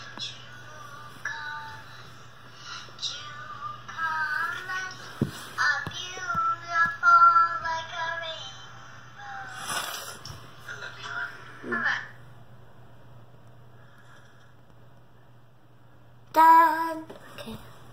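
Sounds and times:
faint low hum: 0.0 - 17.9
high singing voice: 16.3 - 17.4.

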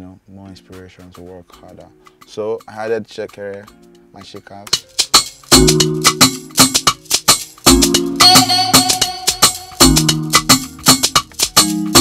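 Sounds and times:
looping chord progression: 0.0 - 12.0
busy shaker pattern: 0.5 - 12.0.

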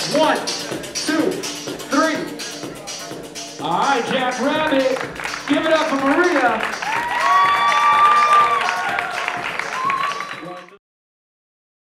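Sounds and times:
crowd clapping and cheering: 4.1 - 10.8
long held shouts: 6.8 - 10.3.

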